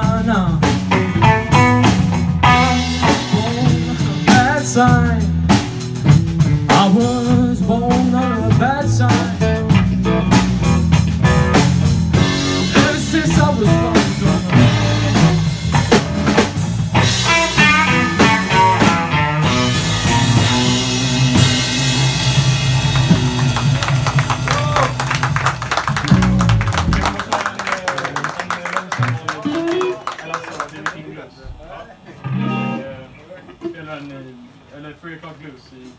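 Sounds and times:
blues band playing: 0:00.0 - 0:31.0, 0:32.1 - 0:33.7
electric guitars ringing: 0:10.0 - 0:27.4, 0:32.2 - 0:33.4.

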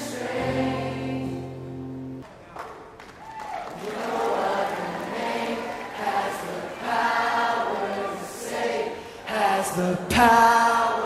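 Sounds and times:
choir singing a worship song: 0:00.0 - 0:01.7, 0:03.8 - 0:11.0.

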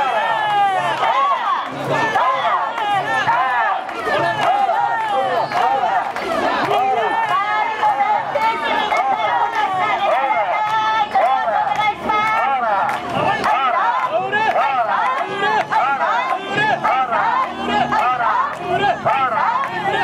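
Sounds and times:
women chanting and shouting: 0:00.0 - 0:20.0.

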